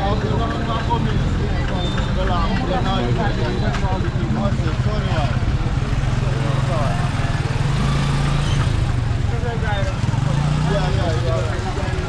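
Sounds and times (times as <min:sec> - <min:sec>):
crowd chatter: 0:00.0 - 0:12.0
motorcycle engine running: 0:03.5 - 0:12.0.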